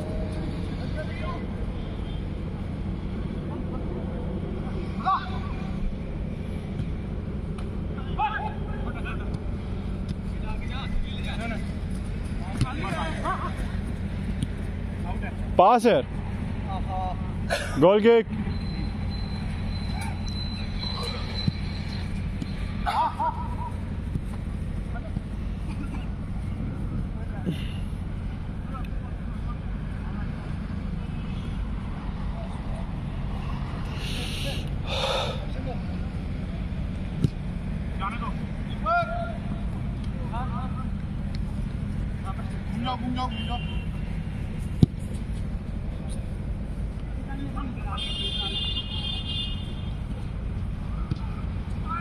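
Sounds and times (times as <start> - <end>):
ball being kicked thud: 44.8 - 45.1.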